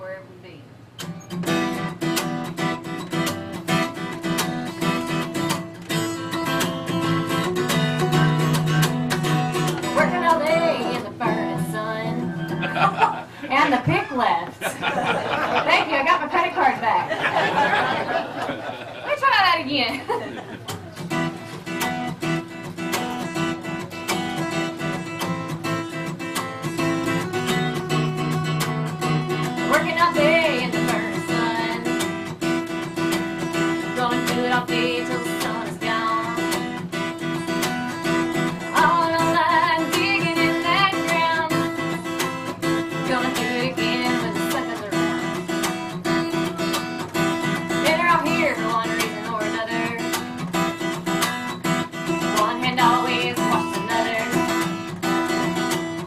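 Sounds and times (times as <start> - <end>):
acoustic guitar strummed: 0.0 - 19.5, 20.3 - 56.0
woman singing: 9.8 - 12.4, 29.3 - 32.2, 33.7 - 36.8, 38.5 - 42.1, 42.9 - 45.4, 47.7 - 50.2, 52.2 - 54.7.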